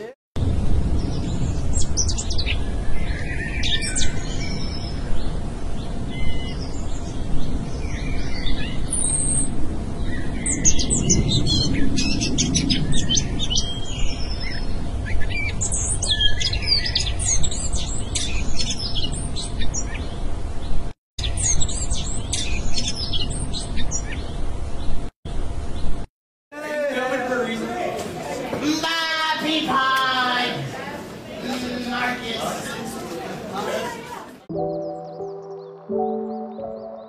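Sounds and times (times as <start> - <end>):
birds chirping: 0.9 - 26.1, 31.3 - 37.0.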